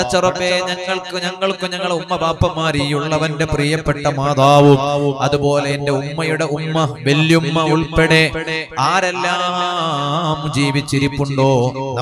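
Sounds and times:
man chanting a prayer: 0.0s - 12.0s.

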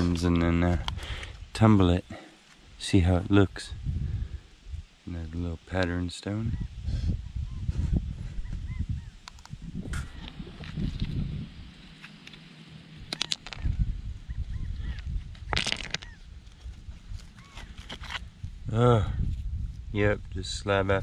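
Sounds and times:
low microphone rumble: 3.0s - 5.6s, 6.5s - 12.0s, 12.7s - 21.0s
bird calling: 6.5s - 9.3s, 9.9s - 10.6s, 13.0s - 16.4s, 17.2s - 18.0s
stones clicking together: 13.0s - 13.7s, 14.9s - 16.2s.

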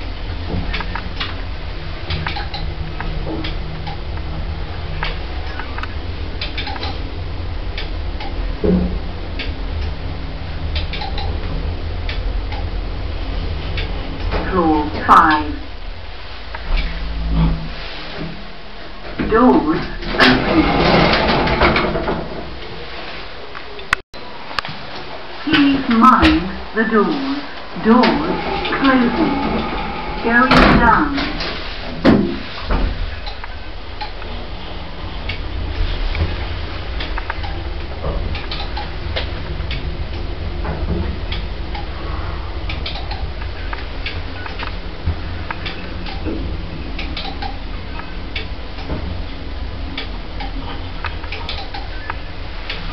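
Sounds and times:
lift humming and rumbling: 0.0s - 52.9s
light ticks and clicks: 7.7s - 8.4s, 9.3s - 10.0s, 10.7s - 11.4s, 37.0s - 40.3s, 41.3s - 41.9s, 42.7s - 44.8s, 47.0s - 52.8s
lift car thump: 27.9s - 33.0s.

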